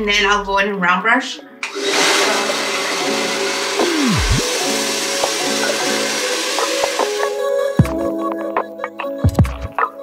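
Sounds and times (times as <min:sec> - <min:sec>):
hair dryer blowing: 0:01.6 - 0:07.6
background music with a beat: 0:03.8 - 0:10.0.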